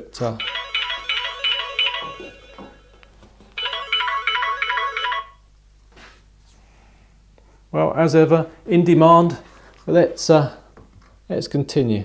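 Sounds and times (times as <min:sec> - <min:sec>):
phone ringtone melody: 0:00.4 - 0:05.4.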